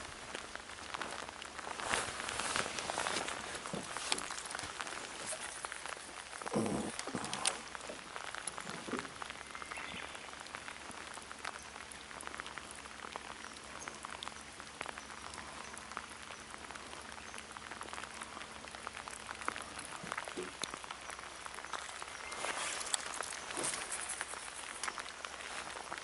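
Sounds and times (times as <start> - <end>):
heavy rain on lake water: 0.0 - 26.0.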